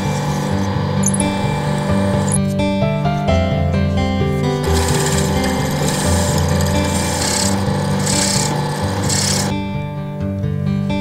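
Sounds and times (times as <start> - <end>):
drill press cutting wood: 0.0 - 2.4, 4.4 - 9.6
background music: 0.0 - 11.0.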